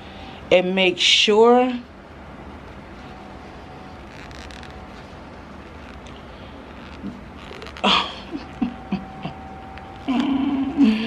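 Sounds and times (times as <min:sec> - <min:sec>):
fabric rustling: 0:02.9 - 0:08.9.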